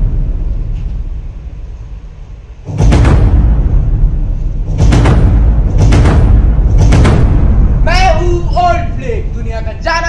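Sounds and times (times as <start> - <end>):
dramatic backing music: 0.0 - 10.0
deep booming drum hit: 2.6 - 9.4.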